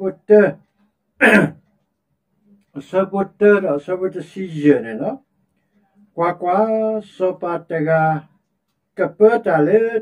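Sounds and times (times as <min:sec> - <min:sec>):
man speaking: 0:00.0 - 0:01.6, 0:02.7 - 0:05.3, 0:06.1 - 0:08.4, 0:09.0 - 0:10.0
man clearing throat: 0:01.2 - 0:01.6.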